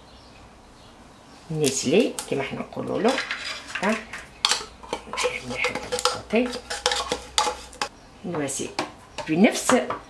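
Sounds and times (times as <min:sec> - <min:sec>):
spoon scraping metal tin: 0:01.9 - 0:07.9.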